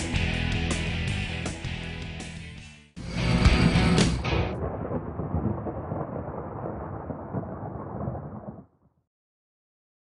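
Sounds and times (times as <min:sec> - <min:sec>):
low rumble sound effect: 0:03.0 - 0:06.4.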